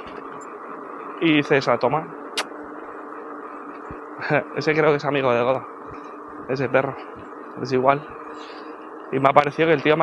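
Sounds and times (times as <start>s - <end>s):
faint motor hum: 0.0s - 10.0s.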